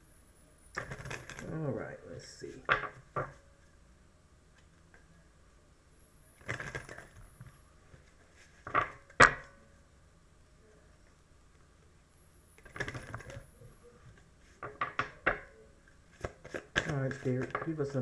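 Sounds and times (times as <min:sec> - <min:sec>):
cards rustling: 0:06.4 - 0:07.2, 0:12.6 - 0:13.4, 0:16.0 - 0:18.0.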